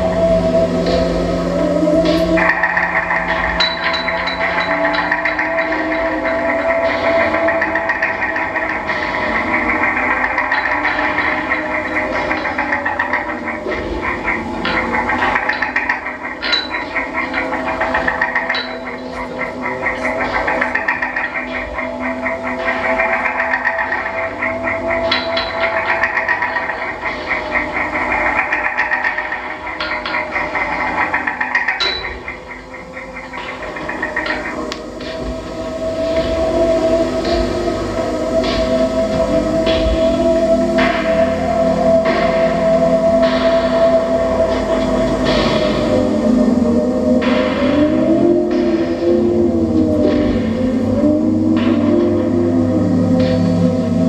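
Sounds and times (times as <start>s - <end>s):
experimental electronic music: 0.0s - 54.0s
swooping pitch glides: 0.0s - 54.0s.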